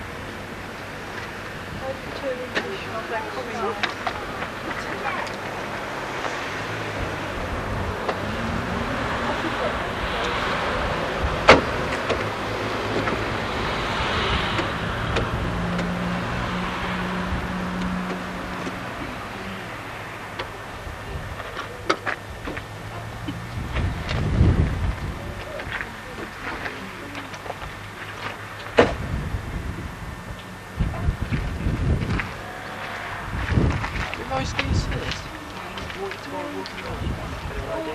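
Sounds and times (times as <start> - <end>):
car passing on road: 0.0 - 37.9.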